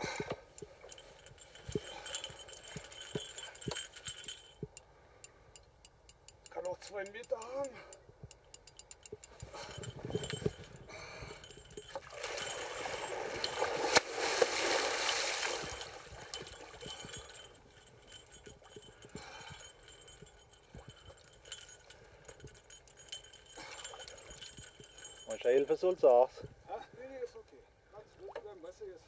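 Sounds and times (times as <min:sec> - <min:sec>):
fishing gear clicks and clinks: 0:00.0 - 0:04.9, 0:05.6 - 0:26.6
water rushing and splashing: 0:11.9 - 0:16.6.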